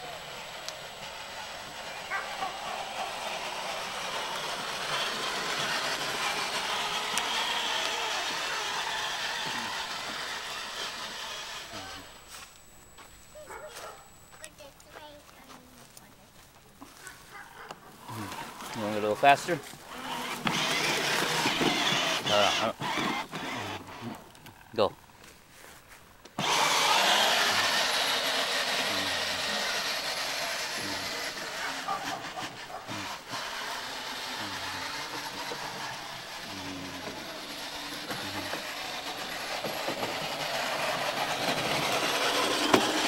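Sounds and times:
electric toy motor whirring: 0.0 - 14.9, 18.0 - 24.8, 26.4 - 43.0
plastic wheels rolling over grass: 0.0 - 43.0.

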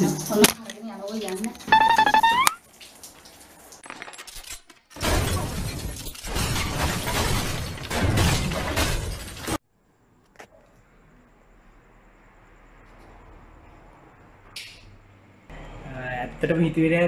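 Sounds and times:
loud crashing and smashing: 4.2 - 9.6.

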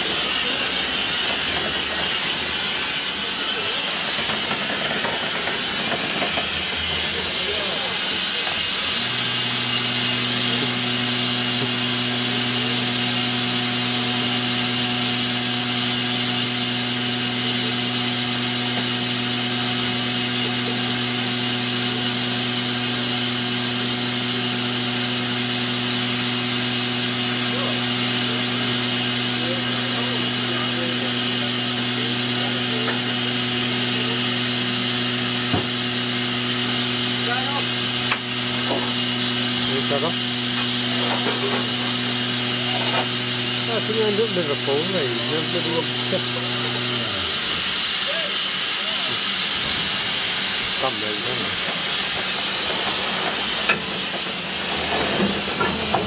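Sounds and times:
steam hissing: 0.0 - 56.0.

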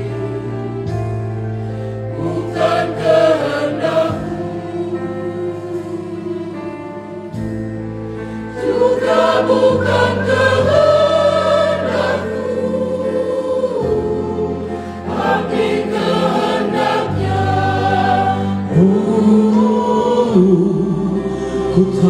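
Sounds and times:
women's choir singing: 0.0 - 1.0, 2.1 - 7.4, 8.4 - 22.0.

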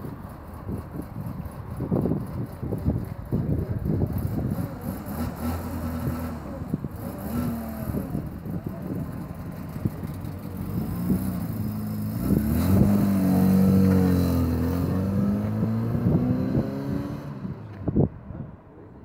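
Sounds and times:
car engines running: 0.0 - 19.0
car engine revving: 9.6 - 18.0.

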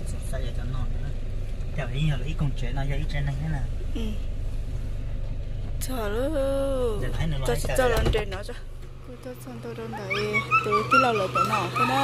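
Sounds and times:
car engine and road rumble: 0.0 - 12.0.

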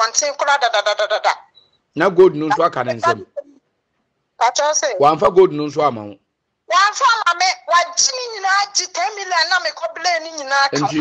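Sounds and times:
woman's sing-song voice: 10.4 - 11.0.

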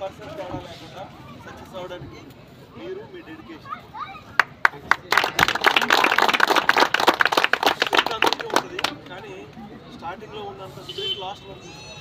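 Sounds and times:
crowd applauding: 4.4 - 9.2.

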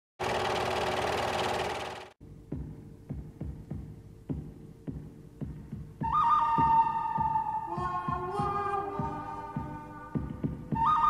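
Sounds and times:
film projector clattering: 0.2 - 2.2.

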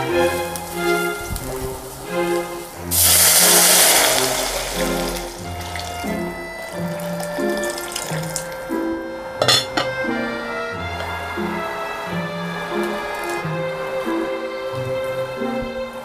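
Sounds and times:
background music: 0.0 - 16.0
liquid pouring into pot: 2.8 - 8.7
glass lid clattering on pot: 9.4 - 10.0.

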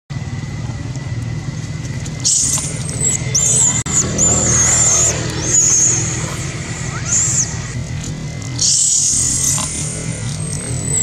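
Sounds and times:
low motor rumble: 0.1 - 11.0.

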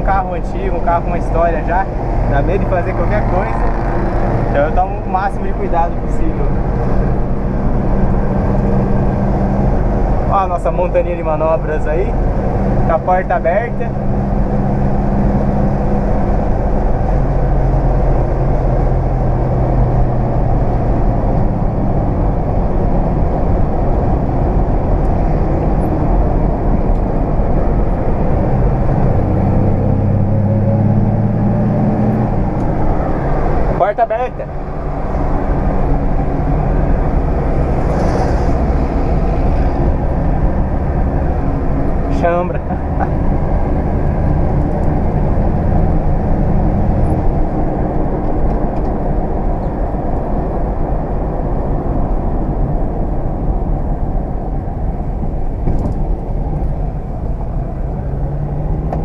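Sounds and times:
car engine at highway speed: 0.0 - 59.0
road and wind noise: 0.0 - 59.0.

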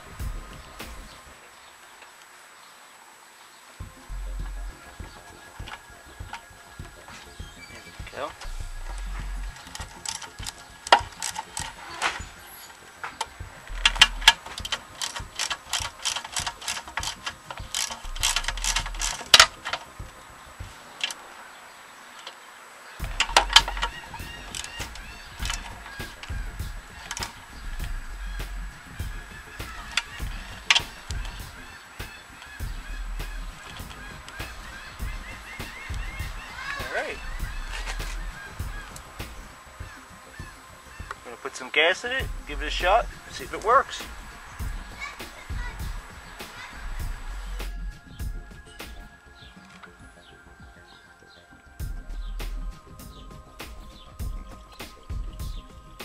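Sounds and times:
socket ratchet clicking: 13.7 - 19.8.

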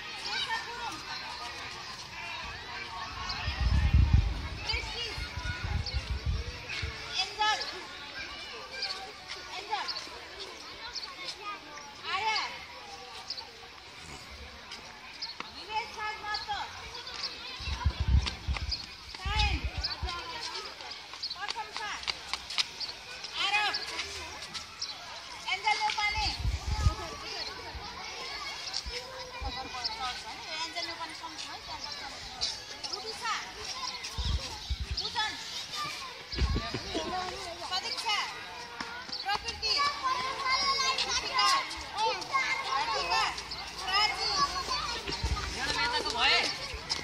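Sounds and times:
children talking and calling out: 0.0 - 47.0.

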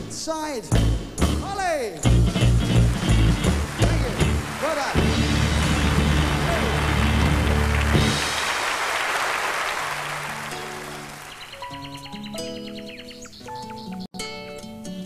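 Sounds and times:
band playing closing chords: 0.9 - 11.4
audience applauding: 2.4 - 12.0.

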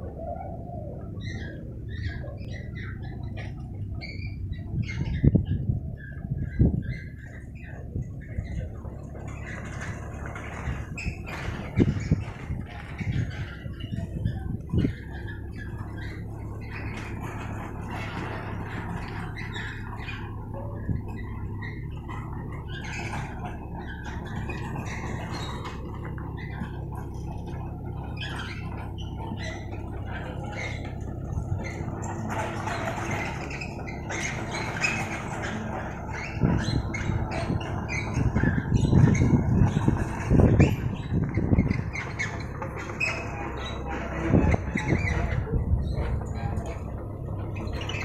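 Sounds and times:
low machine hum: 0.0 - 48.0.

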